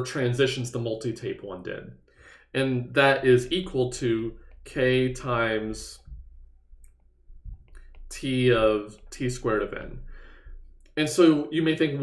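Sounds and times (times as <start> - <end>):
low steady hum: 2.7 - 11.0.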